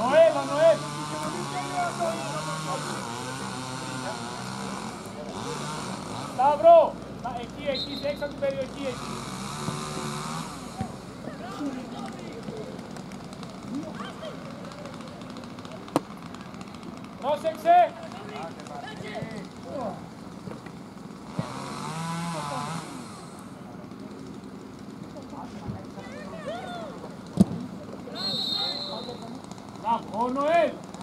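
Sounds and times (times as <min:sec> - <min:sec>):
people shouting outdoors: 0:00.0 - 0:02.7, 0:26.0 - 0:27.0.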